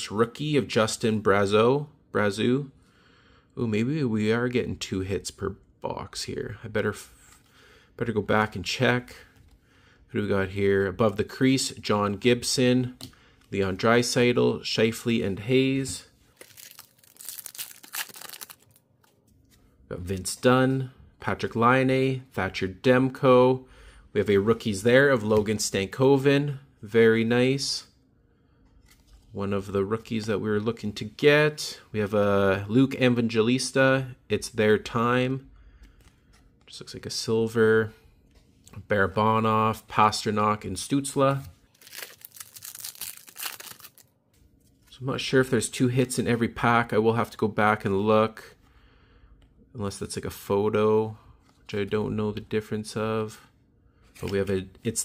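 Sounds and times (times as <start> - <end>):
card pack wrapper crinkling: 16.4 - 18.8, 41.7 - 44.1.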